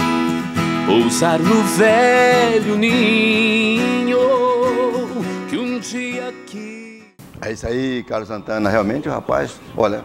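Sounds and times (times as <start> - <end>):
acoustic guitar: 0.0 - 7.4
man singing: 0.8 - 7.2.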